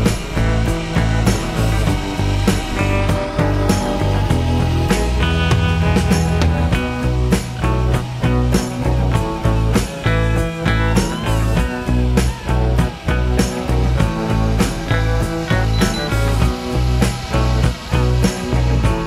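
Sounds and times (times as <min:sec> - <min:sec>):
music with beat and bass line: 0:00.0 - 0:19.0.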